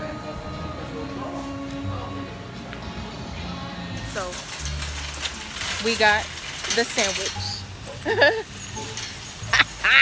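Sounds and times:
woman laughing: 7.9s - 8.6s.

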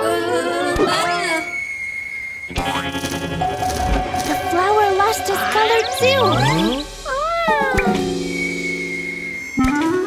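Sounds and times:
cartoon cat meow: 6.4s - 8.0s.

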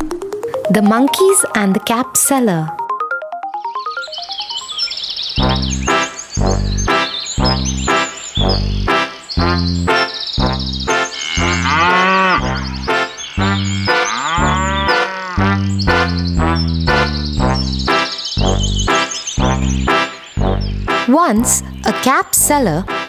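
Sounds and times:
cheerful children's music: 0.0s - 23.0s
cartoon cow mooing: 11.1s - 15.8s.

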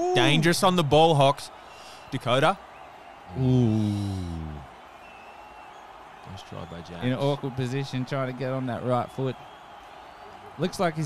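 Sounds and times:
man saying ooh: 3.4s - 4.6s.

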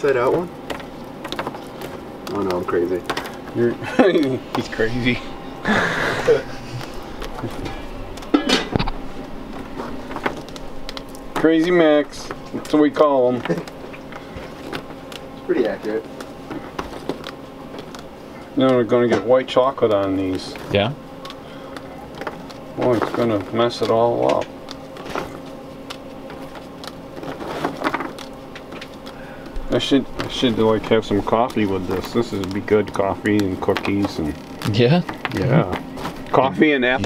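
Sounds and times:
cookies snapping and cracking: 0.0s - 5.1s, 6.8s - 20.6s, 21.2s - 36.4s
steady low hum: 0.0s - 37.0s.

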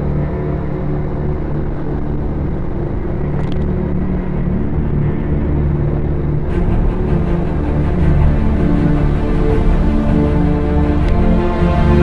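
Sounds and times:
low wind rumble: 0.0s - 12.0s.

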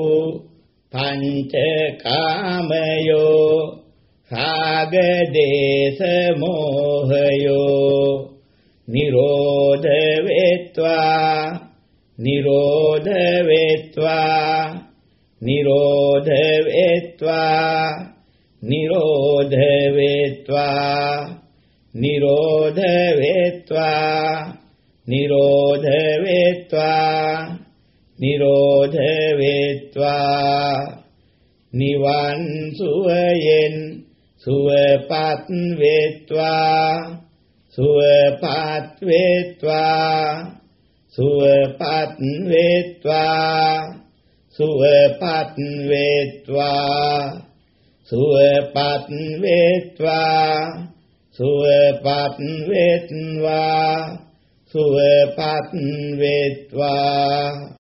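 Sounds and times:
man chanting: 0.0s - 57.8s.

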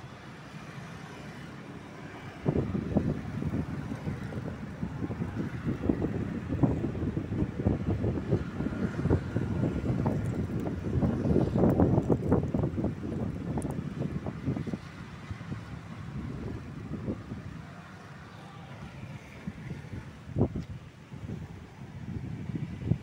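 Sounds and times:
wind buffeting microphone: 2.2s - 23.0s.

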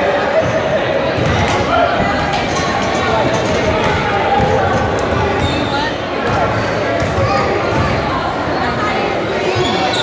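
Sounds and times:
overlapping voices in gym: 0.0s - 10.0s
basketballs bouncing on wooden floor: 3.5s - 8.0s.

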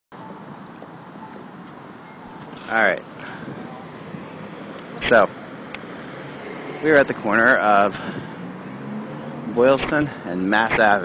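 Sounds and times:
traffic passing: 0.1s - 11.0s.

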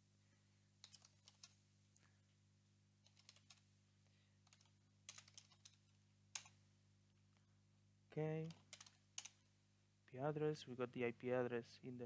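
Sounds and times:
faint keyboard typing: 0.8s - 2.2s, 3.0s - 6.6s, 8.2s - 9.5s
sharp key press: 8.4s - 9.4s.

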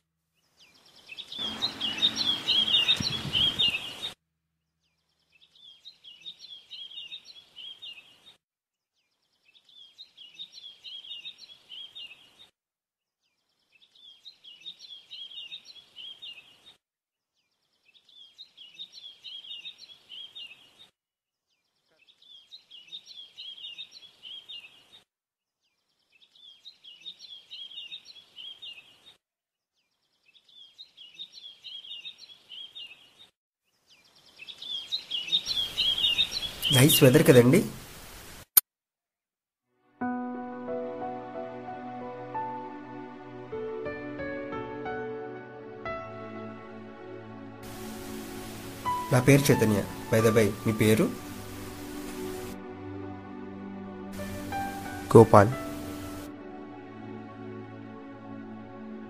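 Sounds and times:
birds chirping: 0.6s - 4.2s, 4.8s - 8.2s, 9.0s - 12.4s, 13.3s - 16.7s, 17.4s - 20.8s, 21.5s - 25.0s, 25.7s - 29.0s, 29.8s - 33.3s, 33.9s - 37.8s, 47.7s - 52.5s, 54.2s - 56.3s.

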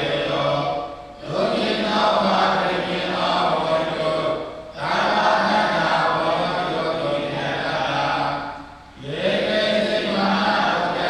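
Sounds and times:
monks chanting in unison: 0.0s - 11.0s.

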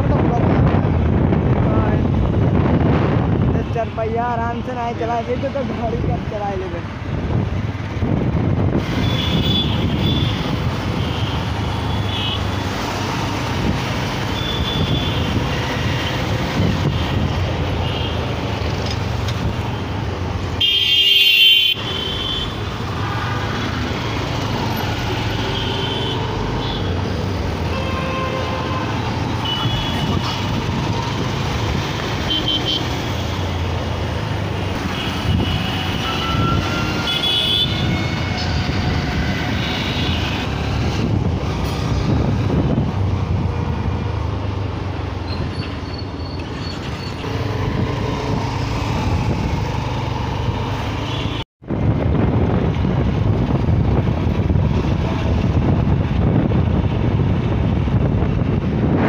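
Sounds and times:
road and wind noise: 0.0s - 59.0s
vehicle horn toots: 35.0s - 38.0s.

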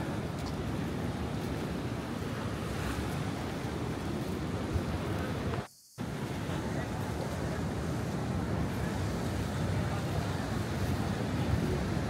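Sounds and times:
surf washing over rocks: 0.0s - 12.0s.

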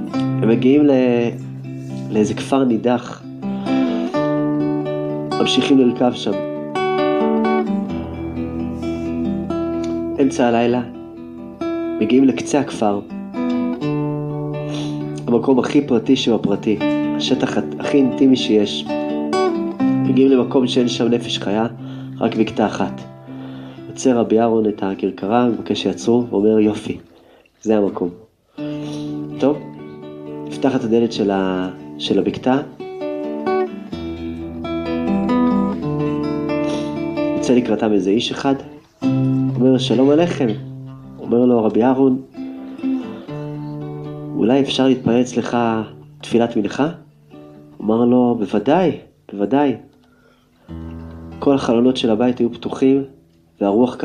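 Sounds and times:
acoustic guitar plucking: 0.0s - 54.0s.

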